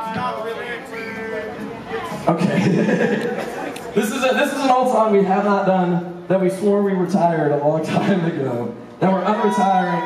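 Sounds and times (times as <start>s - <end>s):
indistinct chatter: 0.0s - 6.2s.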